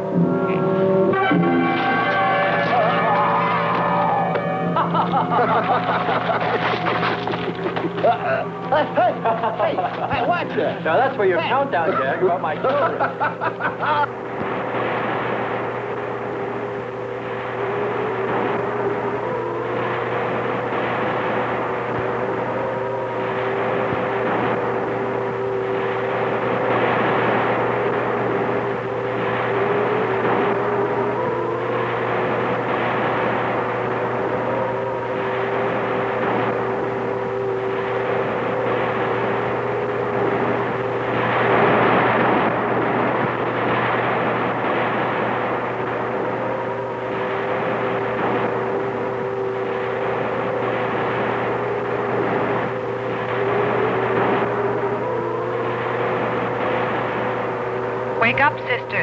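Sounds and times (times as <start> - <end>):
eerie electronic drone: 0.0 - 59.0.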